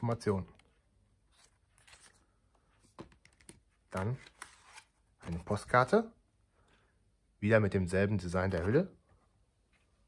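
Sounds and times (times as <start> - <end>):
paper booklet and case handling: 0.2 - 5.8.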